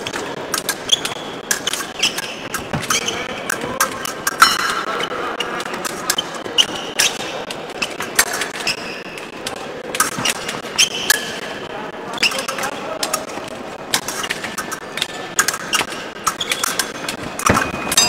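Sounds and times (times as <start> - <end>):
shoe soles squeaking: 0.0 - 13.3, 13.9 - 18.0.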